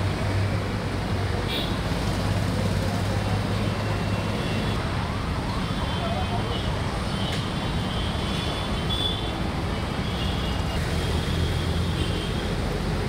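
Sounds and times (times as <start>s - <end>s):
road traffic rumble: 0.0s - 13.0s.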